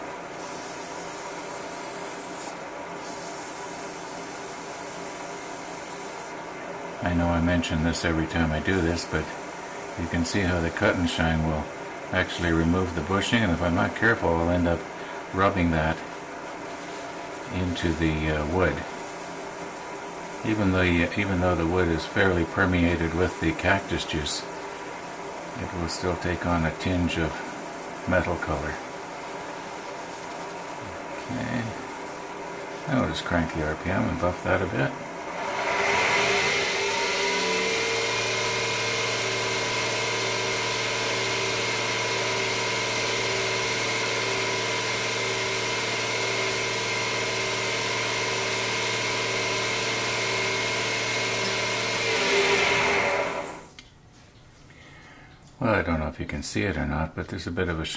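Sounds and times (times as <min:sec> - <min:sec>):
wood lathe running: 0:31.3 - 0:53.7.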